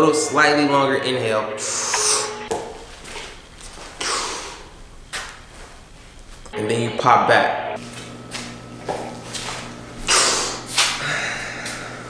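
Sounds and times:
breath puffs through mouth: 0:03.9 - 0:04.7, 0:10.1 - 0:12.0.

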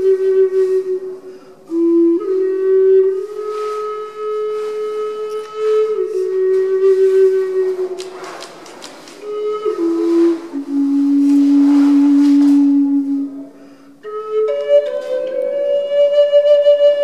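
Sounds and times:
flute breath hiss: 0:00.0 - 0:02.4, 0:03.0 - 0:14.3
wooden flute slow melody: 0:00.0 - 0:17.0.

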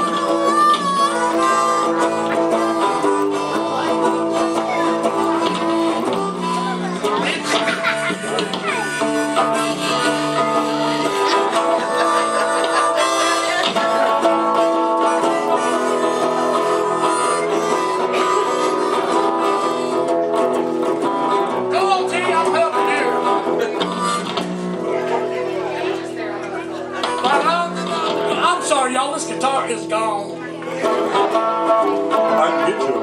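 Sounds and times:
harmonica bent notes: 0:00.0 - 0:33.0
plucked electric guitar: 0:00.0 - 0:33.0.

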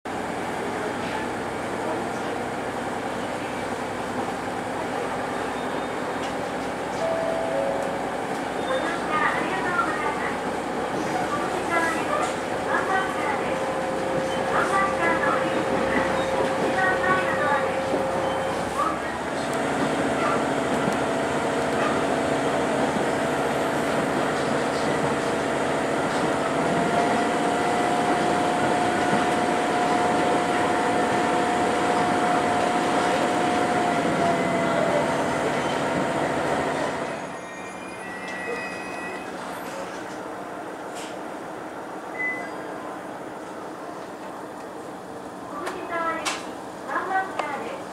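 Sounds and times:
train rolling on rails: 0:00.1 - 0:47.9.

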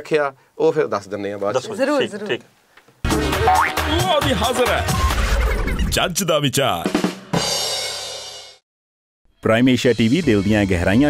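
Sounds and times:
music jingle with drums: 0:03.0 - 0:08.6, 0:09.4 - 0:11.0
person speaking: 0:03.1 - 0:04.9.

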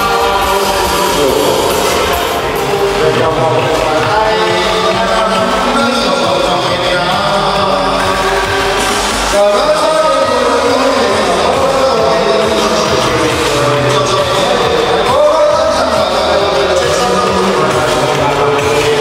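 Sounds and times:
amplified backing music: 0:00.0 - 0:19.0
voices singing along: 0:00.0 - 0:19.0
man singing into a microphone: 0:02.6 - 0:08.4, 0:09.3 - 0:19.0.

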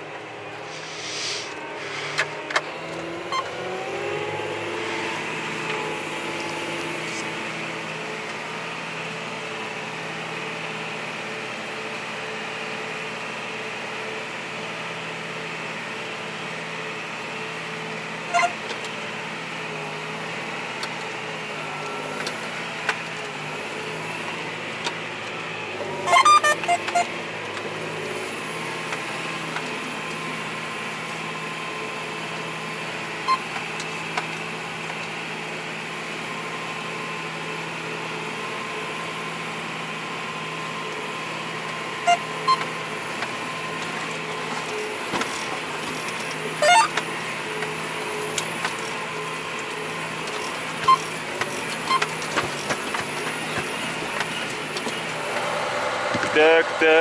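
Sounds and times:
tractor engine drone: 0:00.0 - 0:57.0.

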